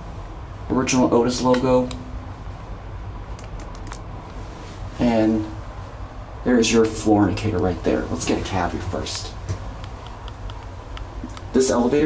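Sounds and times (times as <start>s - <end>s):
ventilation fan hum: 0.0s - 12.0s.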